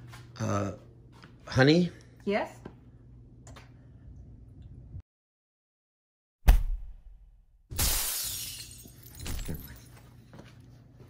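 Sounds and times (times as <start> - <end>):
glass shattering: 7.8 - 9.8.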